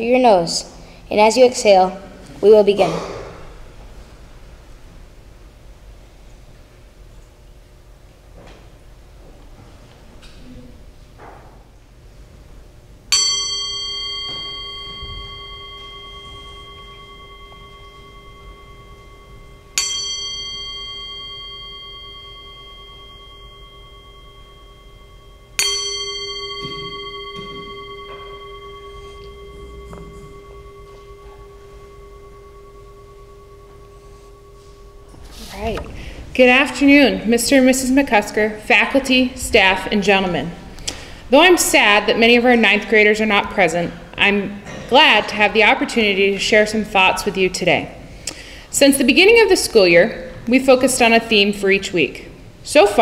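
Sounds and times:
singing bowl ringing: 13.1 - 40.7.

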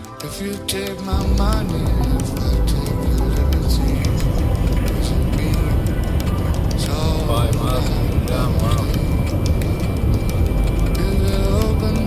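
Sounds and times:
person speaking: 0.2 - 9.3
car tyres and engine rumble: 1.2 - 12.0.

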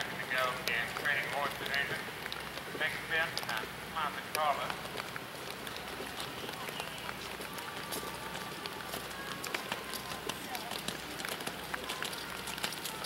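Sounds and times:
faint voices: 0.0 - 13.0
falling rain hiss: 0.0 - 13.0
horse hoofbeats trotting: 0.0 - 13.0.

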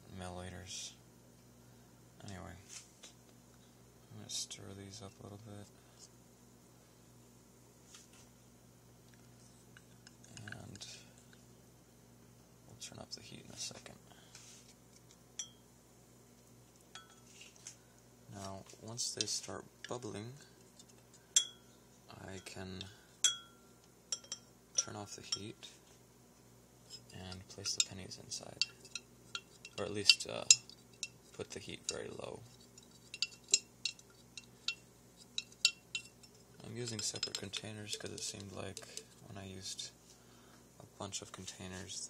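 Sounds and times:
low steady hum: 0.0 - 42.0
metal spoon clinking on glass: 15.4 - 15.6, 16.9 - 17.3, 21.4 - 21.6, 23.2 - 25.5, 28.6 - 31.2, 32.7 - 39.1.

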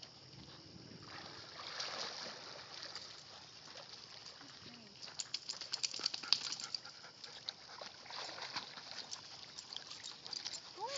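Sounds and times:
dogs paddling and splashing: 0.4 - 10.9.

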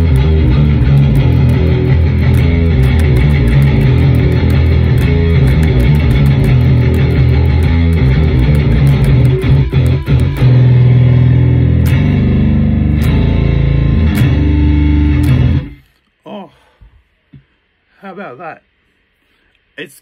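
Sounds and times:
distorted electric bass guitar: 0.0 - 16.0.

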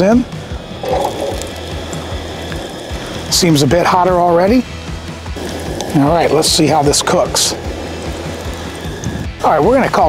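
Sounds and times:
background music: 0.0 - 10.0
food sizzling in hot oil: 0.0 - 10.0.

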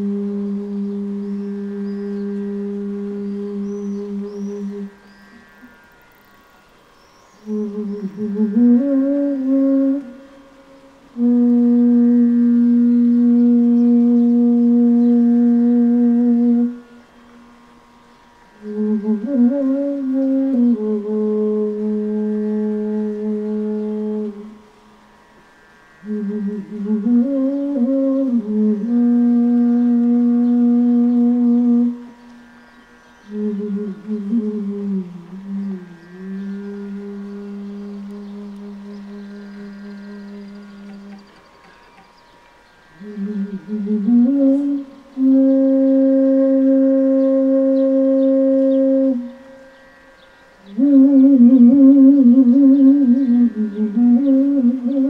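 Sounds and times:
bamboo flute low note: 0.0 - 6.3, 7.3 - 17.0, 18.5 - 24.6, 43.0 - 50.0, 50.6 - 55.0.

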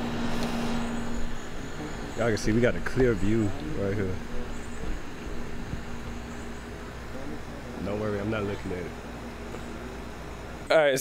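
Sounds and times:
low mechanical hum: 0.0 - 11.0
rushing background noise: 0.0 - 11.0.

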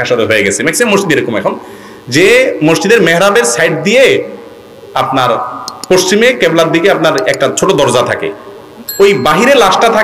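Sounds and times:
man preaching over loudspeaker: 0.0 - 4.4, 5.0 - 8.4, 9.0 - 10.0.

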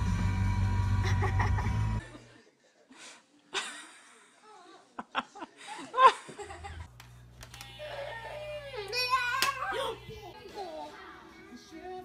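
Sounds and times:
low hum: 0.0 - 2.0.

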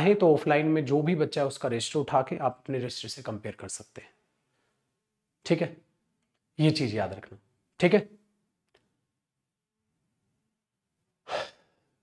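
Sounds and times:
man sighing breath: 11.3 - 11.9.

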